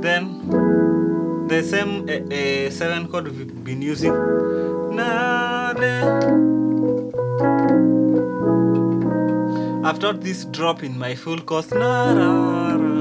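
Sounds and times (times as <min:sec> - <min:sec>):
electric piano chords: 0:00.0 - 0:13.0.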